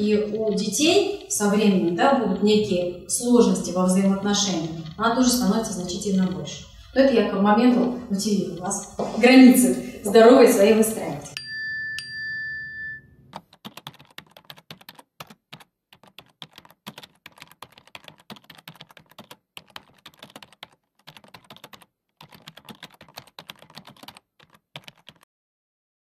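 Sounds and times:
keyboard typing clicks: 13.3s - 25.2s.

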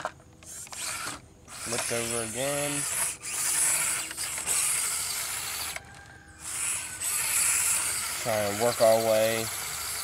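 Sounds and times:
small electric motor whirring: 0.4s - 10.0s.

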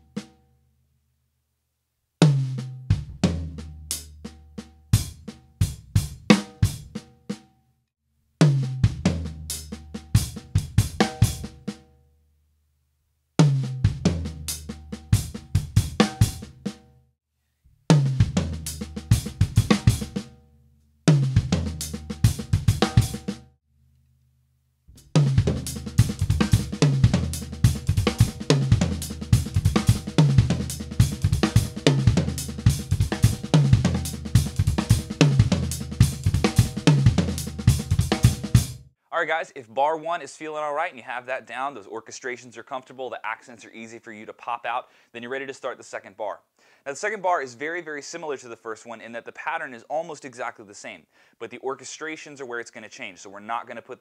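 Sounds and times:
drum kit fill: 2.2s - 7.4s, 8.4s - 11.8s, 13.4s - 16.8s, 17.9s - 20.4s, 21.1s - 23.5s, 24.9s - 38.9s.

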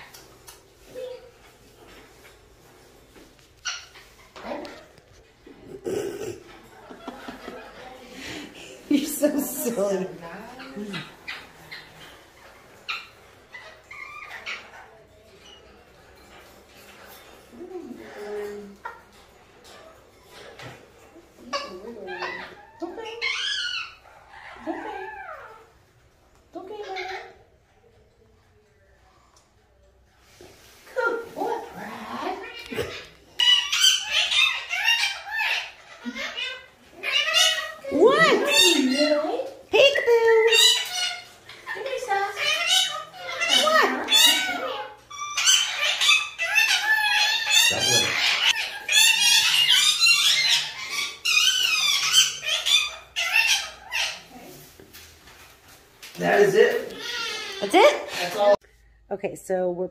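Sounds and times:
parrot calling: 3.6s - 16.3s, 18.0s - 26.0s, 31.2s - 54.8s, 55.4s - 58.6s.

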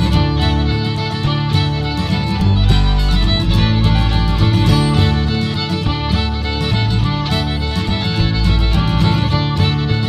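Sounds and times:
fiddle melody: 0.0s - 10.0s
strummed acoustic guitar: 0.0s - 10.0s.

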